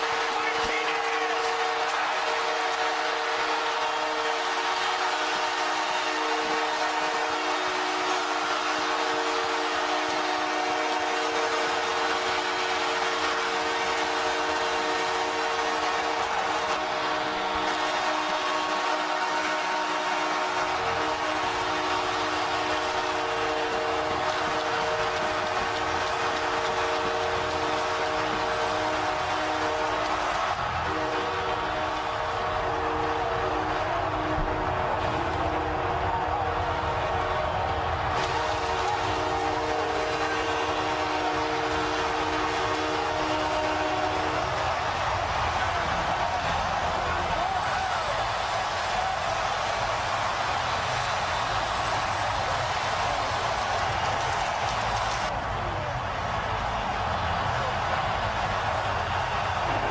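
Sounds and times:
arena goal horn: 0:00.0 - 0:55.3
crowd cheering: 0:00.0 - 0:59.9.

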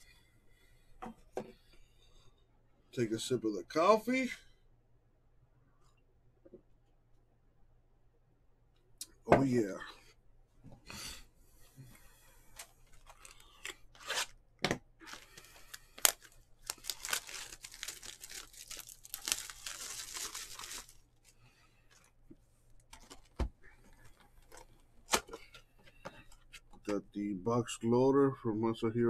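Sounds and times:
plastic wrap tearing and crinkling: 0:12.8 - 0:14.4, 0:15.0 - 0:22.0.

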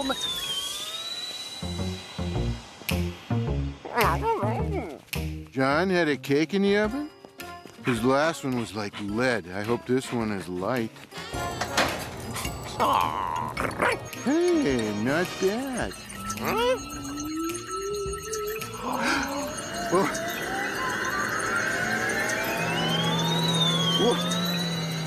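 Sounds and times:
high electronic tone rising: 0:00.0 - 0:05.4, 0:11.7 - 0:25.0
soft background music: 0:01.8 - 0:23.2
cartoon dog vocalising: 0:03.8 - 0:05.0, 0:12.8 - 0:14.1, 0:16.4 - 0:16.9
dog yelps: 0:03.9 - 0:05.0, 0:16.3 - 0:16.9.

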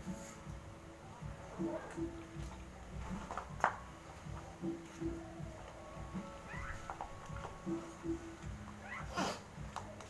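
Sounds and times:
background music: 0:00.0 - 0:10.0
animal high rising cries: 0:05.4 - 0:07.3.

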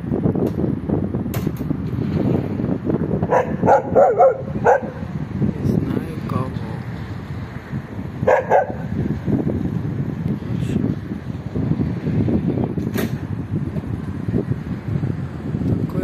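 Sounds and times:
continuous low rumble: 0:00.0 - 0:16.0
dog barking: 0:03.3 - 0:05.0, 0:08.2 - 0:08.9.

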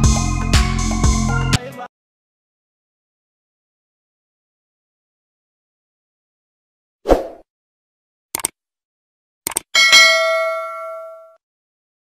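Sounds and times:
bright bell ding: 0:09.8 - 0:11.4.

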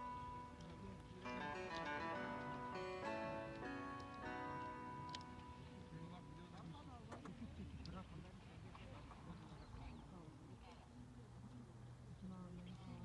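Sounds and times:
guitar music: 0:00.0 - 0:06.9
faint voices talking: 0:00.0 - 0:13.0.

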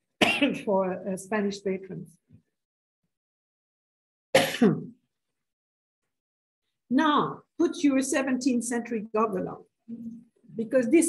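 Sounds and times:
woman clearing her throat: 0:00.2 - 0:00.6, 0:04.3 - 0:05.0.

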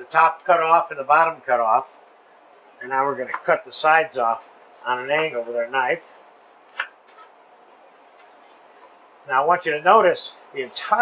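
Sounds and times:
faint knife scrapes: 0:08.0 - 0:09.0.

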